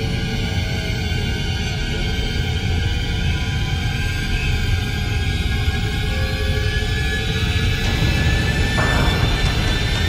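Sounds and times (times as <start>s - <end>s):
sustained background music tones: 0.0s - 10.0s.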